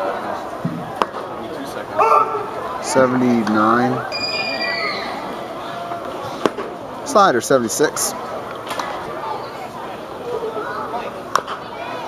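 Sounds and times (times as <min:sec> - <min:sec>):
faint ballpark murmur: 0:00.0 - 0:12.0.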